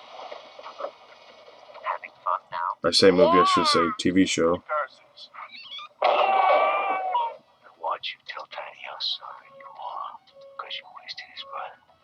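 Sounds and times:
muffled tv soundtrack from small speaker: 0.1s - 12.0s.

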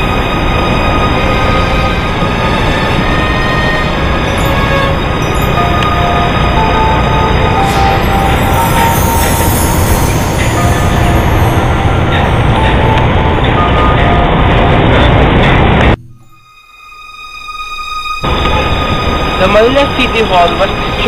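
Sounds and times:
city traffic noise: 0.0s - 16.3s, 17.9s - 21.0s.

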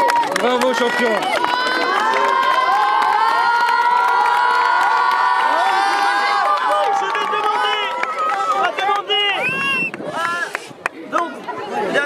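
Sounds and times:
children cheering and shouting: 0.0s - 9.4s
people clapping: 0.0s - 12.0s.

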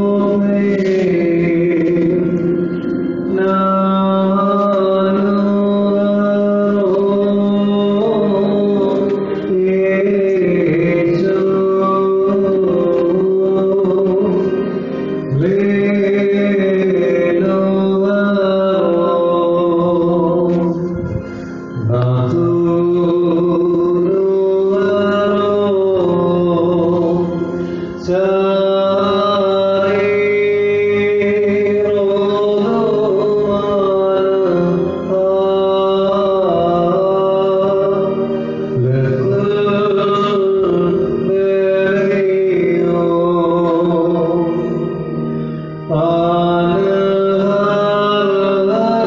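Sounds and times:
man singing a hymn: 0.0s - 49.0s.

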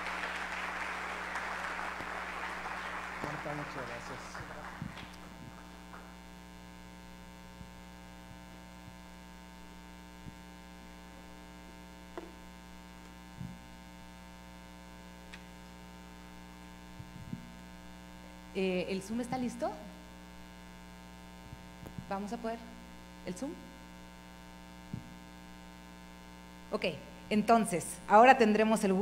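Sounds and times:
applause: 0.0s - 6.2s
electrical mains hum: 0.0s - 29.0s.

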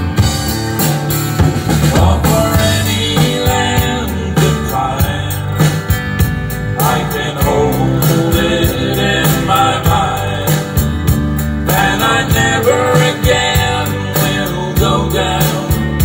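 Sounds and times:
country band playing: 0.0s - 16.0s
drum strokes: 0.0s - 16.0s.

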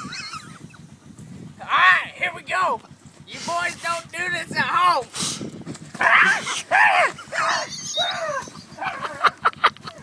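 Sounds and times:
man yelping: 6.0s - 9.1s.

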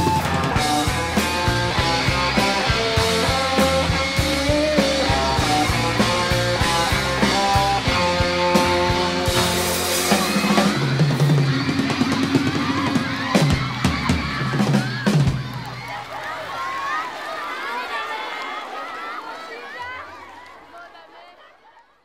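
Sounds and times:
live rock band playing: 0.0s - 15.6s
audience cheering and screaming: 0.0s - 21.4s.

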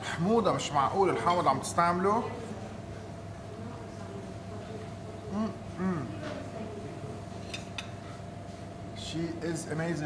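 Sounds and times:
room tone hum: 0.0s - 10.0s
spoon clinking on plate: 7.4s - 8.0s.

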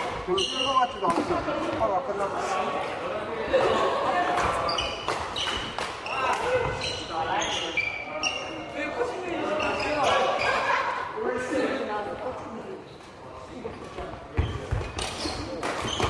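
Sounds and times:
shoes squeaking on court floor: 0.0s - 2.3s, 4.4s - 10.7s, 12.8s - 16.0s
voices in background: 0.0s - 16.0s.

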